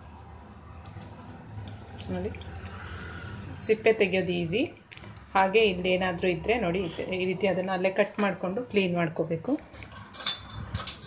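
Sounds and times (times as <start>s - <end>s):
wet skin squishing off: 0.6s - 3.6s.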